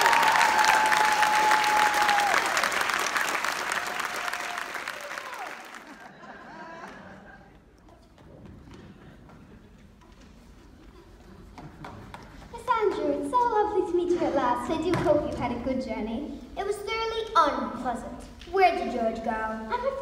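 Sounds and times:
audience applauding: 0.0 - 7.8.

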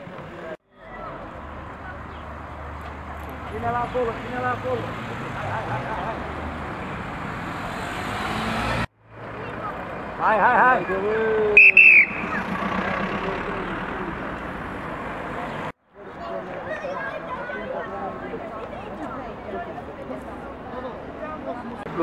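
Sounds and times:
voices: 0.0 - 7.3, 9.2 - 22.0
traffic: 0.0 - 22.0
high whistle: 11.6 - 12.4.

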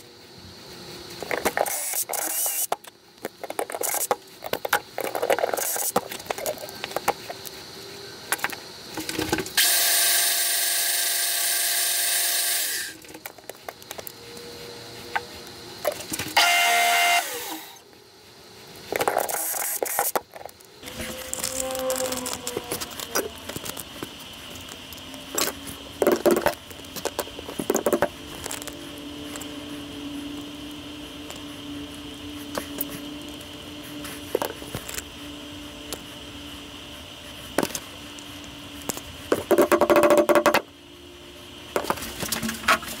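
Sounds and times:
clicks and rattles of small parts: 1.2 - 7.6, 18.8 - 29.5
cordless drill whining: 9.6 - 13.0, 16.4 - 17.8.

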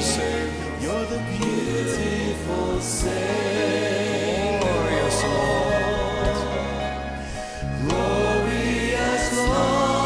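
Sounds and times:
bass line: 0.0 - 10.0
voices singing held notes: 0.0 - 10.0.

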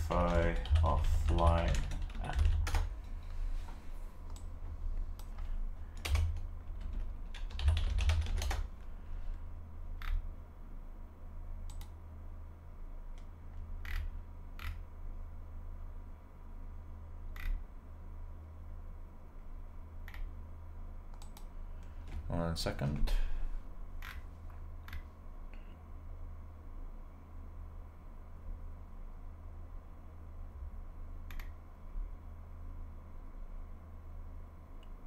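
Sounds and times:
computer keyboard typing: 0.0 - 3.1, 5.2 - 8.8
steady low hum: 0.0 - 35.0.

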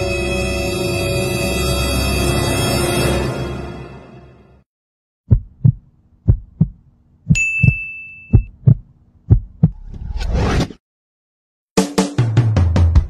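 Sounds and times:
heartbeat thumps: 5.3 - 9.8
high ringing tone: 7.3 - 8.5.

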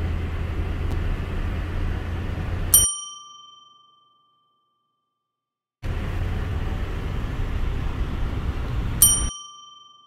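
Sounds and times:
car interior road noise: 0.0 - 2.9, 5.8 - 9.3
bright bell-like ding: 2.8 - 4.7, 9.0 - 10.0.

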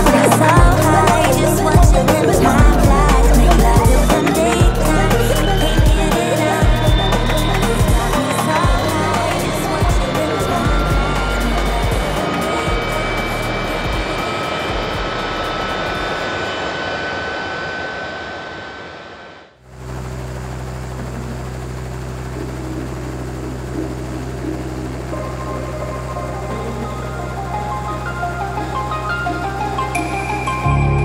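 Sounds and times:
music: 0.0 - 15.8, 23.5 - 31.0
steady low drone: 0.0 - 18.7, 19.6 - 31.0
helicopter turbine and rotor: 0.0 - 30.6.

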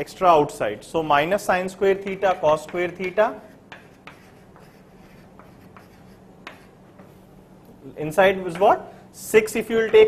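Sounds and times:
chalk tapping on board: 2.0 - 7.2, 9.7 - 10.0
chalk scratching on chalkboard: 2.1 - 6.8.

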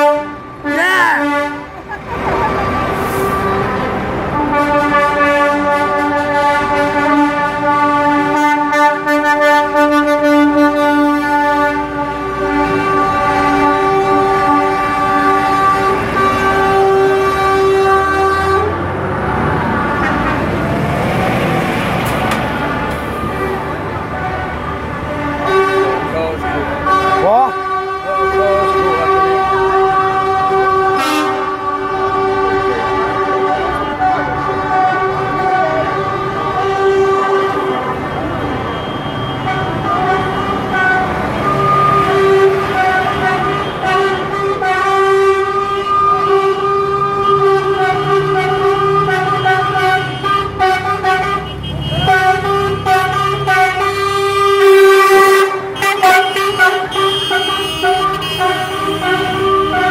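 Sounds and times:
lorry air horns: 0.0 - 18.9, 23.1 - 38.3, 39.1 - 59.9
diesel truck engines passing: 0.0 - 59.9.

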